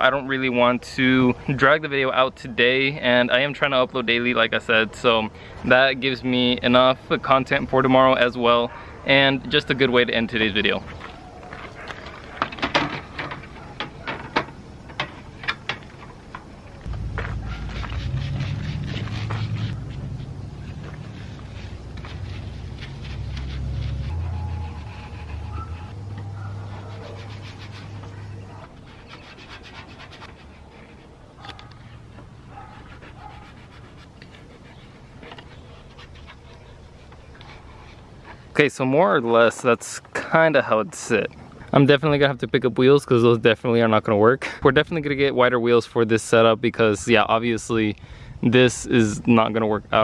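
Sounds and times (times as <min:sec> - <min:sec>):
plastic scraping and rubbing: 0:10.6 - 0:26.0, 0:26.7 - 0:38.4
low rumble: 0:16.8 - 0:26.5.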